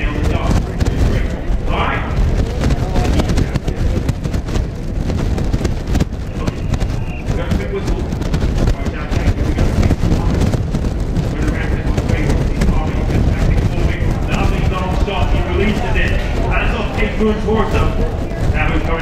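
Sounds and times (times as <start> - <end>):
hoofbeats on grass: 0.0 - 19.0
indistinct voices: 0.0 - 19.0.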